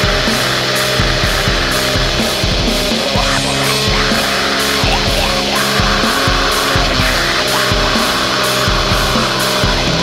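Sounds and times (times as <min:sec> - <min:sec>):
distorted electric guitars: 0:00.0 - 0:10.0
drums: 0:00.0 - 0:10.0.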